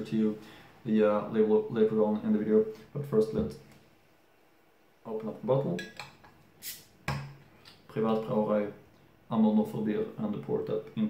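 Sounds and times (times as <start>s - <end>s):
bottle cap pried off: 5.8s - 7.4s
carbonation hiss: 6.6s - 7.8s.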